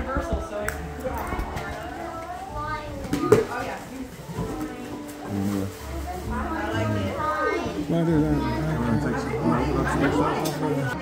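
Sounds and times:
background music: 0.0s - 11.0s
people talking indistinctly: 0.0s - 11.0s.

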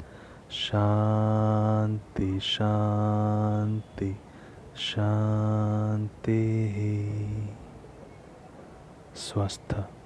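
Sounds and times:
man chanting: 9.2s - 10.0s.

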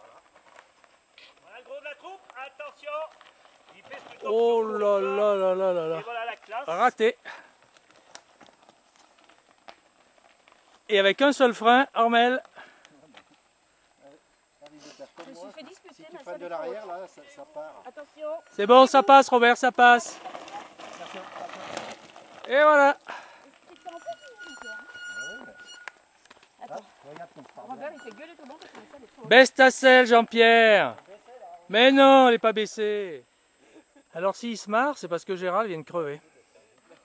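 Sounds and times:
bike tires crunching on gravel: 0.0s - 14.0s, 16.2s - 32.7s
thin steady high tone: 12.9s - 19.7s, 22.8s - 26.9s, 27.6s - 30.9s.

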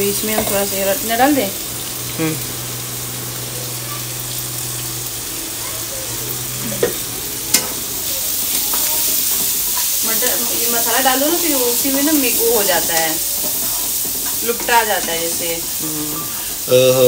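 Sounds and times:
low steady hum: 0.0s - 8.2s
food sizzling in hot oil: 0.0s - 17.0s.

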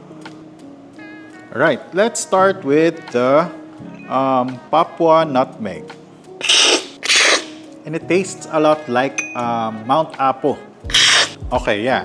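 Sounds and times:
loud coffee slurping: 6.4s - 7.6s, 10.9s - 11.4s.

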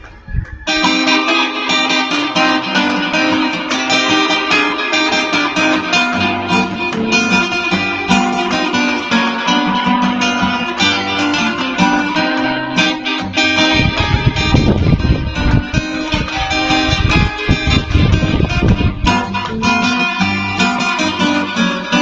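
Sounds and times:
acoustic guitar playing: 0.7s - 22.0s.

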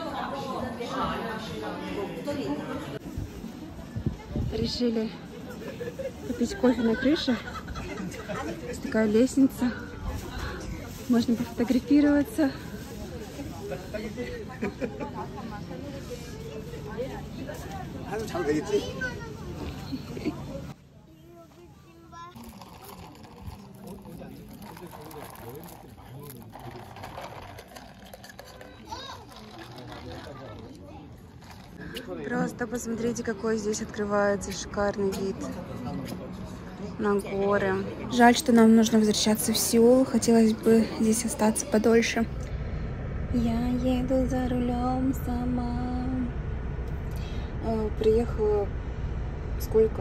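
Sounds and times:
indistinct background talk: 0.0s - 50.0s
woman talking: 11.0s - 12.6s, 32.3s - 35.5s, 37.0s - 42.4s, 43.3s - 46.3s, 47.2s - 48.7s, 49.6s - 50.0s
car road and drivetrain hum: 41.9s - 50.0s.

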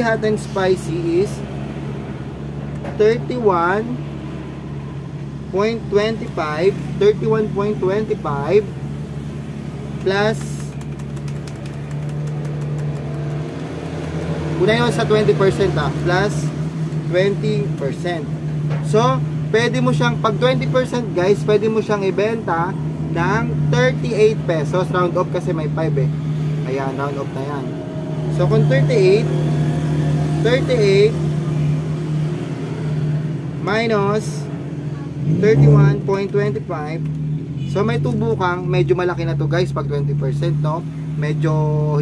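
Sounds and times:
calculator keys clicking: 10.0s - 14.4s.

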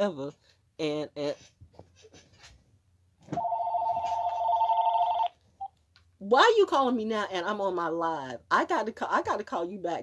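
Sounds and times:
two-tone mobile phone ring: 3.4s - 5.3s.

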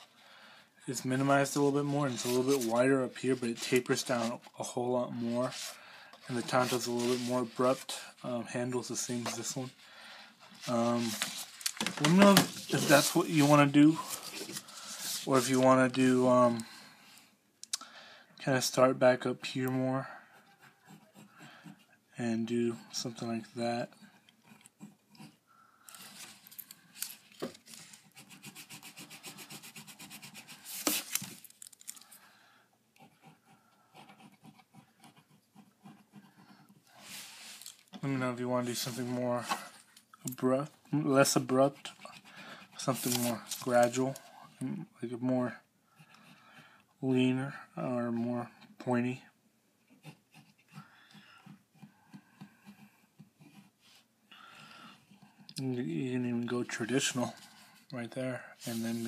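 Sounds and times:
rubbing on paper: 1.5s - 4.5s, 5.2s - 8.1s, 12.4s - 15.8s, 20.3s - 22.0s, 27.7s - 31.3s, 41.2s - 44.1s, 58.6s - 59.0s
scratches on paper: 5.2s - 8.0s, 20.3s - 22.0s, 24.1s - 25.4s, 27.8s - 31.3s, 33.0s - 37.6s, 41.2s - 44.2s, 49.8s - 50.8s, 51.4s - 54.1s.

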